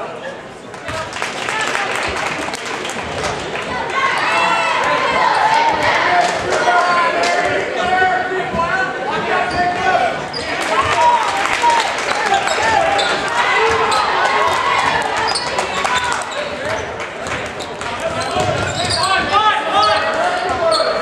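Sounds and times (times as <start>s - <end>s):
spectators chattering: 0.0s - 21.0s.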